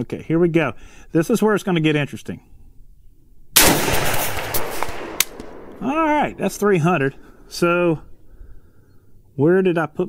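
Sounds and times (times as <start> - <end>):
rifle shot with echo: 3.6 - 6.6.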